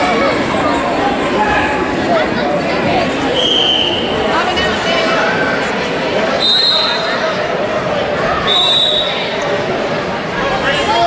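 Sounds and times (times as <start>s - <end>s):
crowd chatter: 0.0s - 11.0s
referee's whistle blasts: 3.4s - 4.1s, 6.4s - 7.1s, 8.5s - 9.3s.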